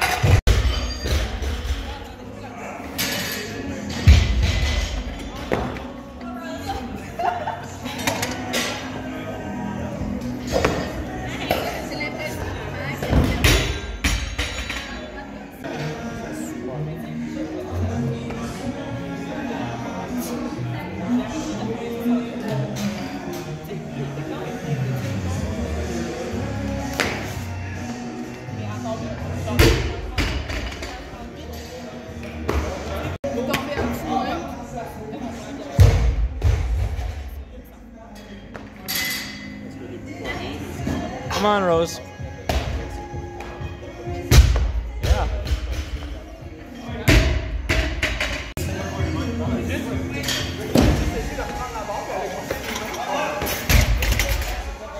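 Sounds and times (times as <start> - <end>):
background music: 0.0 - 54.9.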